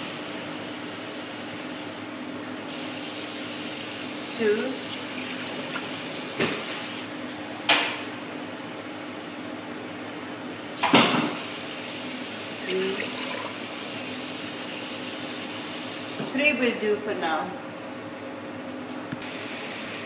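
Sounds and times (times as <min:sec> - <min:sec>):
pot heating on gas hob hissing: 0:02.6 - 0:07.1, 0:10.8 - 0:16.3, 0:19.2 - 0:20.0.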